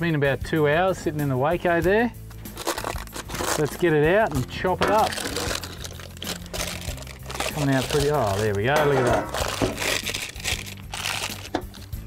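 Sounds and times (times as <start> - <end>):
baking paper rustling and crinkling: 2.5 - 12.0.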